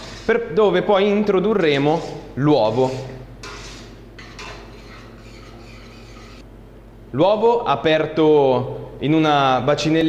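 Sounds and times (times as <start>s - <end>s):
water swishing in pot: 0.0s - 0.4s.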